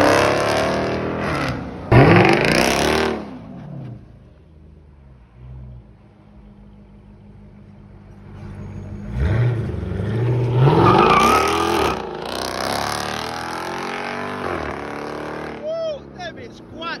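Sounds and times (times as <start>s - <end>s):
car engine revving and accelerating: 0.0s - 4.0s, 9.0s - 15.6s.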